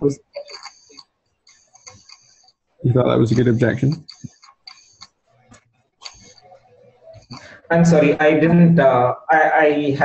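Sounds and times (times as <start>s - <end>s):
low background noise: 0.0s - 10.0s
faint clicks: 0.3s - 2.8s.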